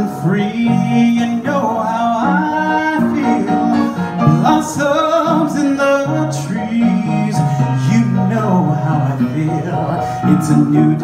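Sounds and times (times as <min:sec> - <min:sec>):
grand piano accompaniment: 0:00.0 - 0:11.0
man singing live: 0:00.0 - 0:11.0.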